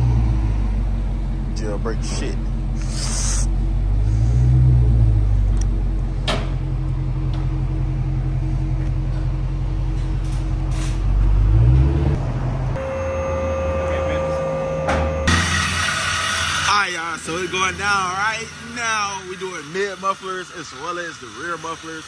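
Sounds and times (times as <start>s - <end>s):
car engine rumbling: 0.0s - 22.0s.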